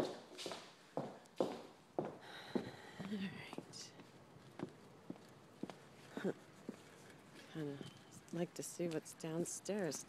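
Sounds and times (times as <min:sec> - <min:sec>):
footsteps on hard floor: 0:00.0 - 0:07.5
footsteps on pavement: 0:00.0 - 0:09.1.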